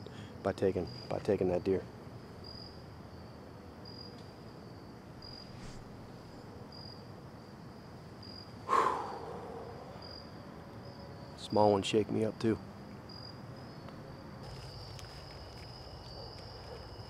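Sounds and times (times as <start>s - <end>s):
crickets chirping: 0.0s - 17.0s.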